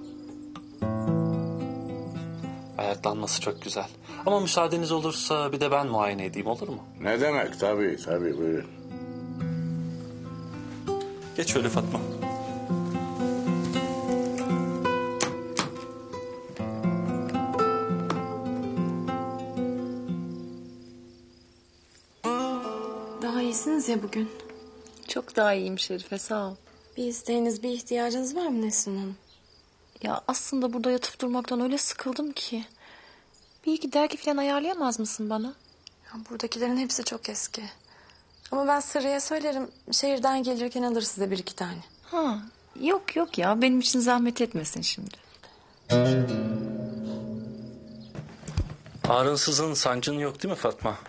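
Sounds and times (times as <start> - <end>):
plucked string notes: 0.2 - 21.0, 22.2 - 25.2, 45.9 - 48.8
faint knocks: 48.0 - 49.2.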